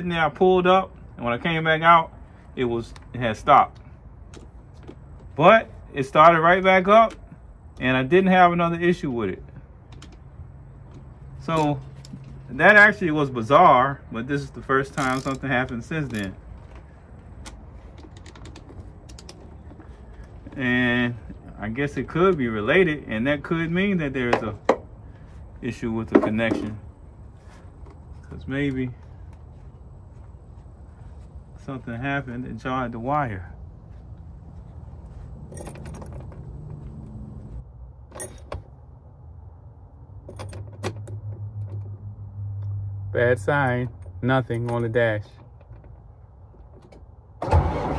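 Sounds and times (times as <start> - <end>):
steady low hum: 0.0 - 40.6
key ring jangling: 35.4 - 36.4.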